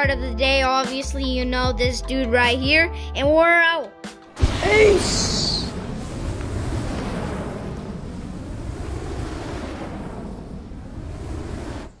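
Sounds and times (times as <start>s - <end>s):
low rushing rumble: 4.4s - 12.0s.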